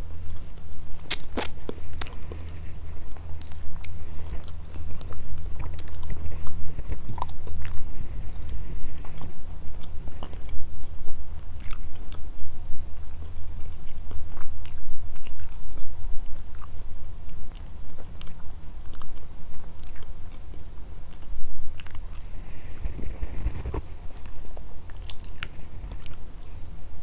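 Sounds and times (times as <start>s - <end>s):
person chewing food: 0.0s - 26.6s.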